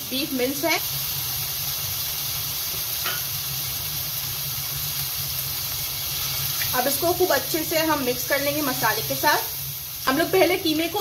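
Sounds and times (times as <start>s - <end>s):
mince sizzling in a frying pan: 0.0s - 11.0s.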